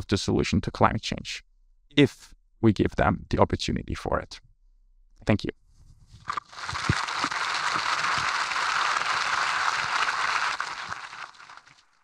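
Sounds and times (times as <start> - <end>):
audience applauding: 6.5 - 12.0.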